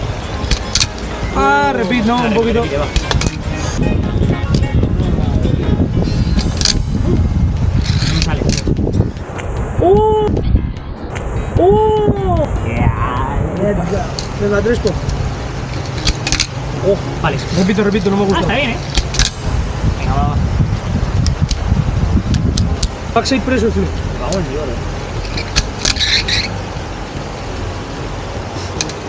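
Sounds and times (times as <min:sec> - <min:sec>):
street background rumble: 0:00.0 - 0:29.0
wind on microphone: 0:02.7 - 0:13.6, 0:18.4 - 0:23.3.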